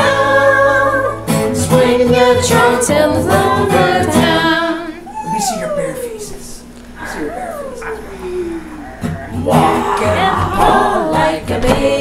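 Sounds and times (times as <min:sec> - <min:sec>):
person wailing in falling pitch: 0:05.0 - 0:10.6.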